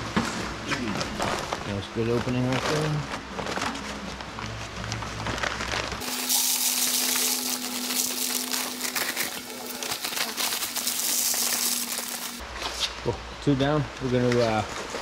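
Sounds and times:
cement mix pouring into bucket: 5.9s - 12.4s.

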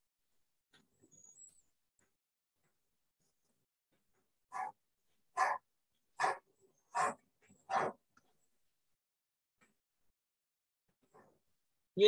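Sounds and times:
dog barking: 4.5s - 4.8s, 5.4s - 5.6s, 6.2s - 8.0s.

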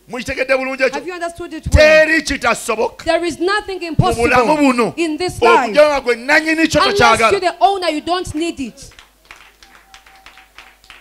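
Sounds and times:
faint scattered clapping: 8.2s - 11.0s.

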